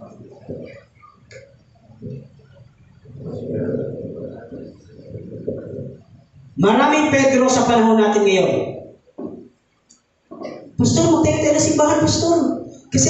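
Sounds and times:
muffled voice-like murmuring: 0.0 - 6.6.

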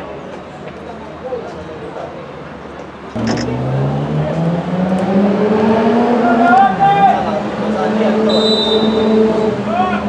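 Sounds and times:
vehicle engine accelerating: 3.2 - 9.7.

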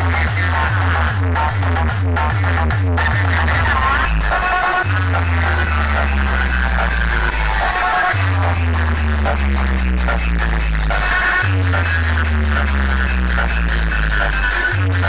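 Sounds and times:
deep bass notes: 0.0 - 15.0
loud electronic dance music: 0.0 - 15.0.

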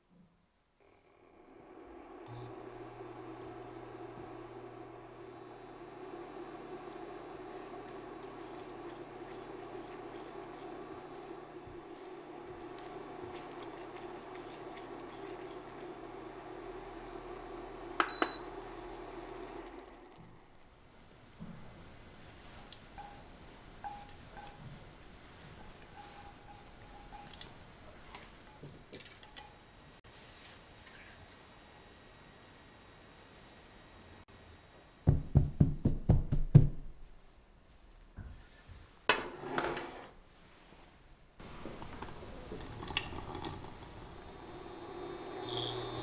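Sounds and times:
induction cooktop humming: 0.8 - 30.0, 41.3 - 46.0.

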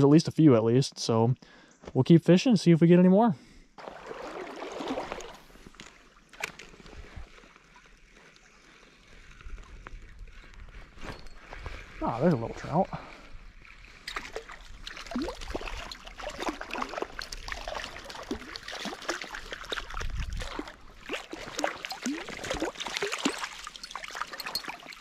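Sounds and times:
fish splashing and thrashing: 3.8 - 25.0
trickling stream water: 3.8 - 25.0.

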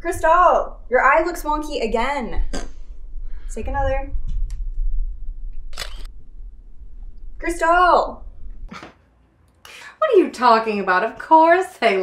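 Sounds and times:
steady low hum: 0.0 - 8.8
phone camera shutter: 5.7 - 6.1.

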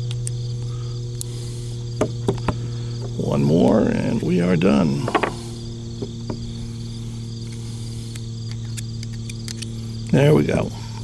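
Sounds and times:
crickets chirping: 0.0 - 11.0
low hum: 0.0 - 11.0.

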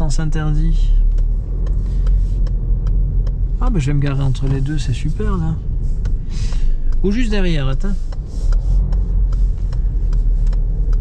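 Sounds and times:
car cabin rumble: 0.0 - 11.0
faint ticks: 0.9 - 11.0.

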